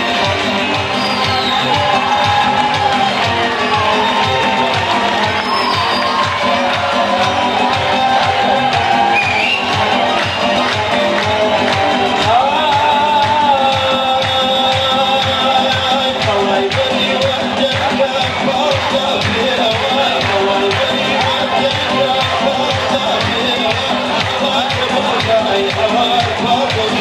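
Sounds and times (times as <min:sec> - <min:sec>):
drum machine beat: 0:00.0 - 0:27.0.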